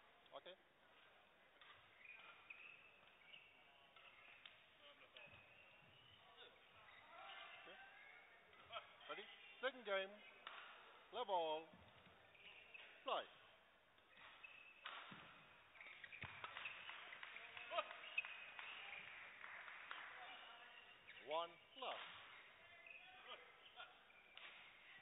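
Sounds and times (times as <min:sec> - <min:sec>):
racket hitting shuttlecock: 0:01.0 - 0:06.0, 0:10.4 - 0:11.0, 0:14.0 - 0:19.0
shoes squeaking on court: 0:01.0 - 0:10.8, 0:11.7 - 0:13.4, 0:14.0 - 0:19.2, 0:20.2 - 0:25.0.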